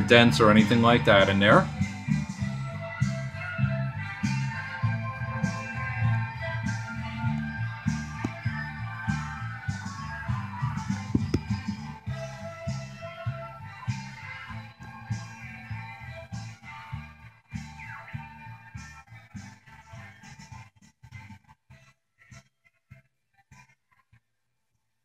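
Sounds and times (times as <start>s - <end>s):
vinyl record music with bass and drums: 0.0s - 22.5s.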